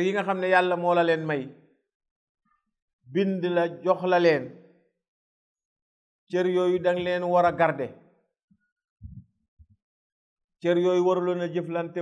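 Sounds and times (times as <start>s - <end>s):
man speaking: 6.3s - 7.9s, 10.6s - 12.0s.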